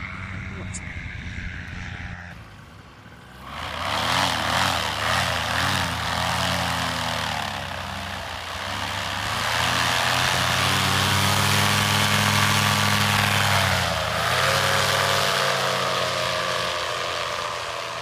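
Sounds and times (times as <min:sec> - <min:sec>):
paramotor engine and propeller: 0:00.0 - 0:18.0.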